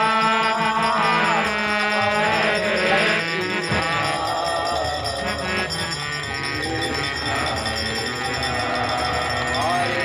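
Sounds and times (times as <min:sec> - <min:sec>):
harmonium chords: 0:00.0 - 0:10.0
steady high ringing: 0:00.0 - 0:10.0.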